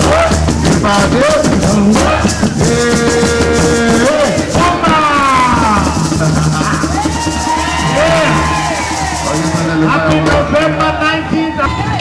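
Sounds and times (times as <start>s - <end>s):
man singing into a microphone: 0.0s - 7.0s
shakers: 0.0s - 10.2s
drums: 0.0s - 12.0s.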